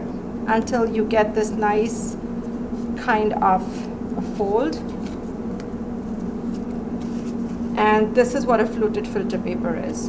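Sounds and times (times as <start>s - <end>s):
low background hum: 0.0s - 10.0s
filter paper crinkling: 4.2s - 7.8s.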